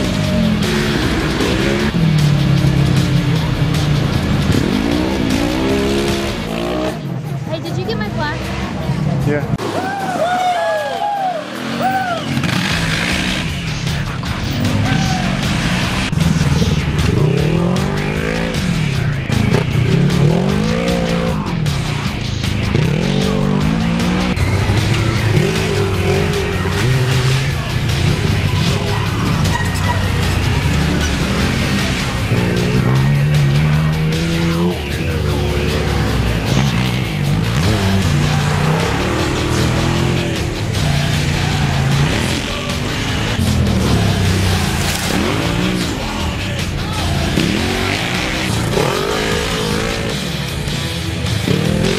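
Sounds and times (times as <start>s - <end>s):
racing engines revving: 0.0s - 51.9s.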